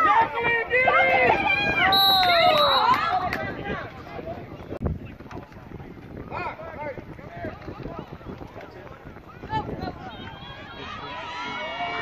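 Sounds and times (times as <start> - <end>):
wind noise on microphone: 0.0 - 12.0
spectators shouting: 9.5 - 12.0.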